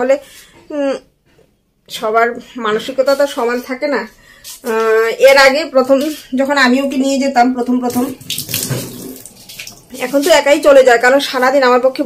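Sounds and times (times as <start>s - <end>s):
water running: 7.7s - 11.5s.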